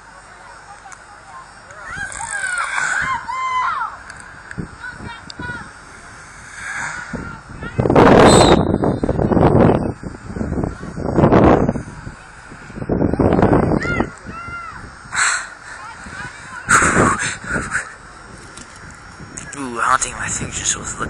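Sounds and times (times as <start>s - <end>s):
spectators shouting: 1.8s - 4.1s.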